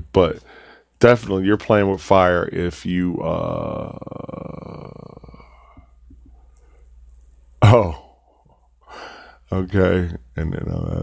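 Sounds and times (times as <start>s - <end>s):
man's creaky hesitation sound: 3.3s - 5.6s.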